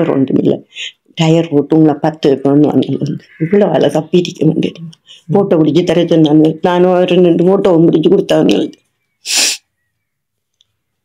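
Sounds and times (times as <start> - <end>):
person breathing out sharply: 9.3 - 9.6.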